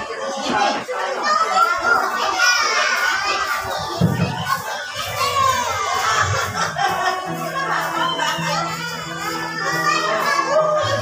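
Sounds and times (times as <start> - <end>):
children chattering and calling out: 0.0 - 11.0
other voices in room: 0.0 - 11.0.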